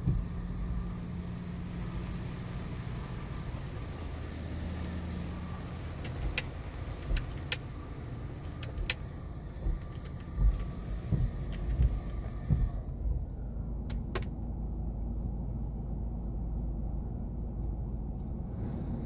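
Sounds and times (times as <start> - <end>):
rushing water and brushing: 0.0 - 8.4
car wash machine hum: 0.0 - 19.0.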